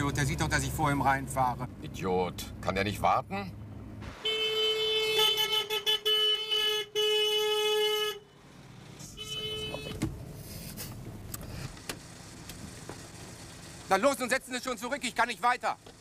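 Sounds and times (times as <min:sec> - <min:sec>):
car horn honking: 0:04.1 - 0:08.4, 0:09.0 - 0:10.1.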